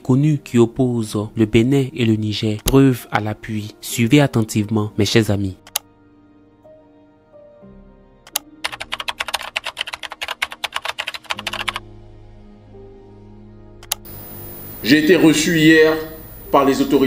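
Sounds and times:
rapid keyboard typing: 0:08.3 - 0:11.8
man talking: 0:14.8 - 0:17.0.

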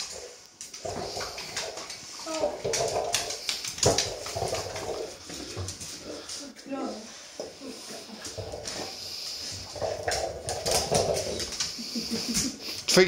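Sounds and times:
light clicks on tile floor: 0:00.0 - 0:06.4.

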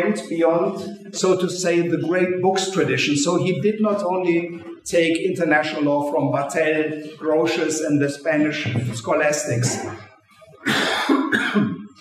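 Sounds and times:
person coughing: 0:10.6 - 0:11.8.

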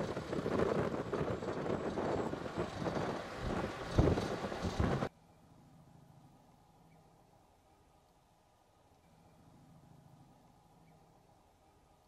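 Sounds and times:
wind buffeting microphone: 0:00.0 - 0:05.1
vehicle driving on dirt road: 0:00.0 - 0:07.3.

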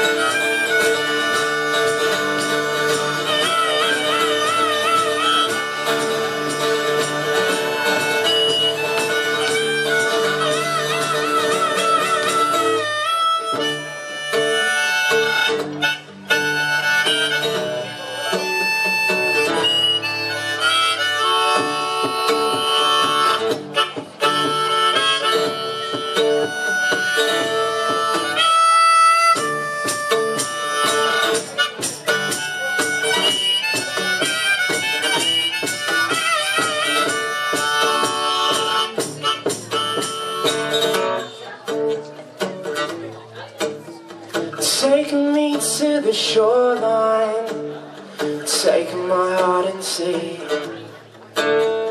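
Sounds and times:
harmonica melody: 0:00.0 - 0:41.6
acoustic guitar: 0:00.0 - 0:51.9.

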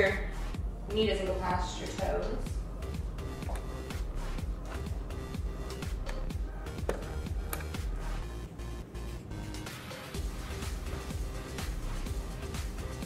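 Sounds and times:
bass-heavy background music: 0:00.0 - 0:13.0.

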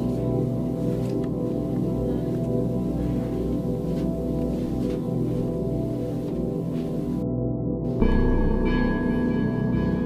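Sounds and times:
eerie ambient music: 0:00.0 - 0:10.0.

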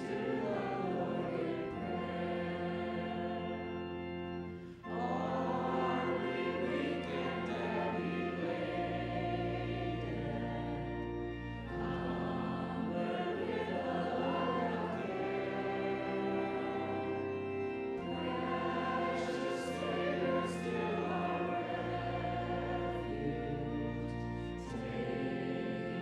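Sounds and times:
group singing slow hymn: 0:00.0 - 0:26.0
sustained instrumental accompaniment: 0:00.0 - 0:26.0.

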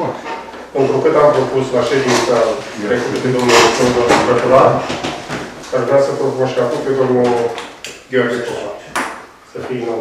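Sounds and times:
person speaking: 0:00.0 - 0:05.1.

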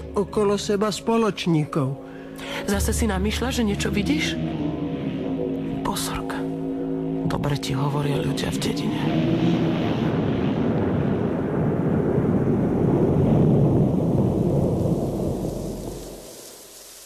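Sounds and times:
rain hissing: 0:00.0 - 0:06.7, 0:09.1 - 0:17.0
rolling thunder: 0:08.5 - 0:16.4.

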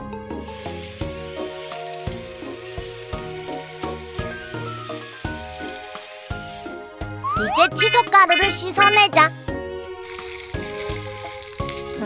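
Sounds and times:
light children's music: 0:00.0 - 0:12.0
high wavering whine: 0:00.6 - 0:06.9
person speaking: 0:07.4 - 0:09.3.

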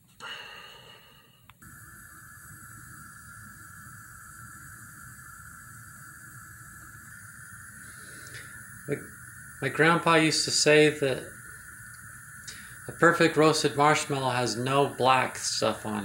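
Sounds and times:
gas stove burner hissing: 0:00.0 - 0:16.0.

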